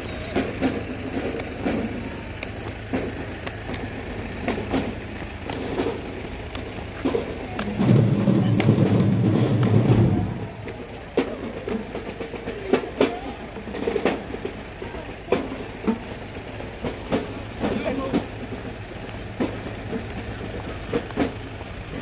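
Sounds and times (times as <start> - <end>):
marching band playing: 0.0 - 21.6
outdoor chatter: 0.0 - 22.0.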